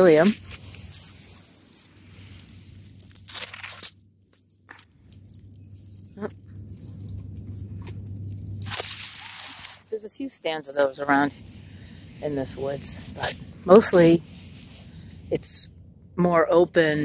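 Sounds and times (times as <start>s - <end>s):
leaves rustling and crunching: 0.0s - 10.0s.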